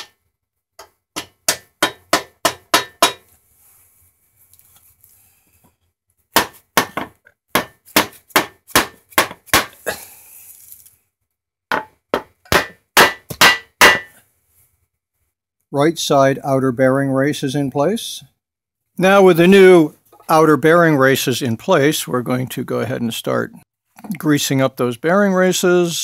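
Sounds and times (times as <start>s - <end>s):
hammer striking wood block: 0.0s - 0.2s, 0.8s - 3.3s, 6.3s - 9.8s, 11.7s - 14.2s.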